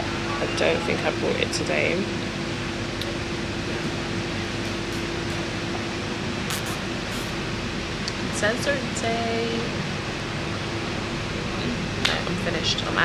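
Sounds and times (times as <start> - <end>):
air conditioning hiss: 0.0 - 13.0
constant low hum: 0.0 - 13.0.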